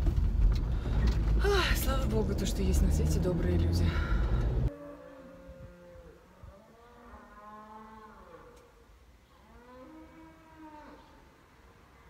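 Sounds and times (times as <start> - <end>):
faint cattle mooing: 4.7 - 11.3.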